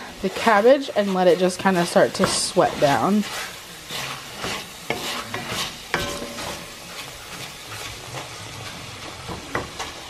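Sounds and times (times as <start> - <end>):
meat sizzling in a pot: 0.0 - 10.0
wooden spoon scraping pot: 0.0 - 10.0
sharp ringing knock: 6.0 - 6.5.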